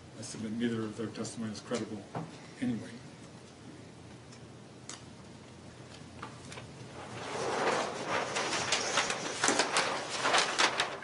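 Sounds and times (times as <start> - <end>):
short rustles and clicks: 6.0 - 11.0.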